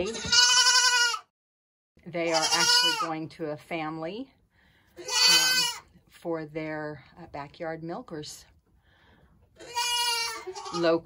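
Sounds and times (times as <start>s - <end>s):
goat kid bleating: 0.0s - 1.3s, 2.2s - 3.2s, 5.0s - 6.0s, 9.6s - 11.0s.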